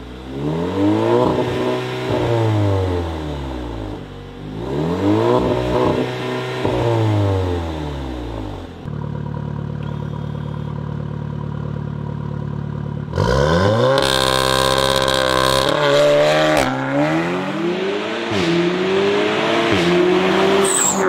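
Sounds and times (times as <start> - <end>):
car engine revving and idling: 0.0 - 21.0.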